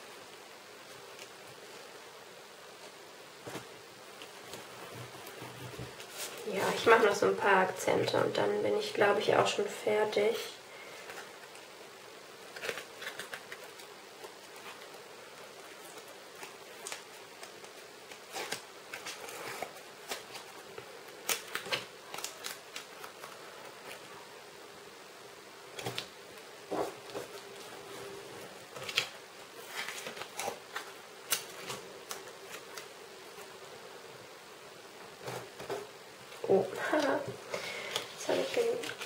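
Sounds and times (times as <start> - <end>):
tape peeled and torn: 15.7 - 24.0.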